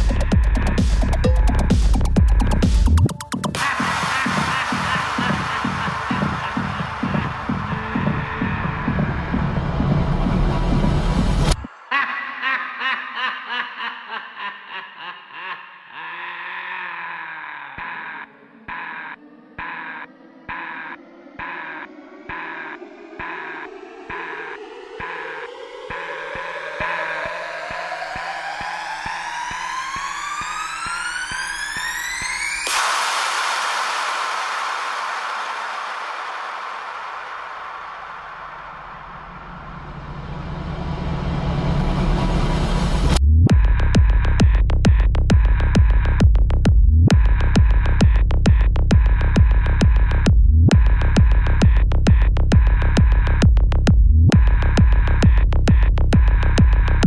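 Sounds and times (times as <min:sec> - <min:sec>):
chopped synth chords pulsing: 0:00.0 - 0:11.7, 0:18.7 - 0:57.0
synth bass: 0:00.0 - 0:11.7, 0:18.6 - 0:36.0, 0:36.6 - 0:57.0
synth tone rising in pitch: 0:19.2 - 0:43.2
wash of noise: 0:21.4 - 0:43.0.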